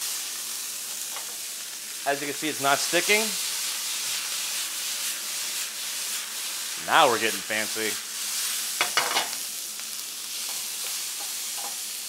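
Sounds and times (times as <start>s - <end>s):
beef sizzling in oil: 0.0s - 12.0s.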